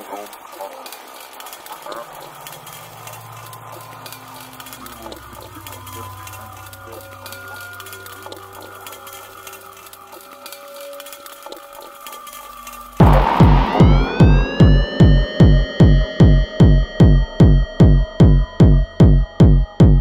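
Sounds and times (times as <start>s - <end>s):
faint crackle: 0.0s - 13.9s
ambient electronic music: 0.0s - 20.0s
low drone: 0.0s - 20.0s.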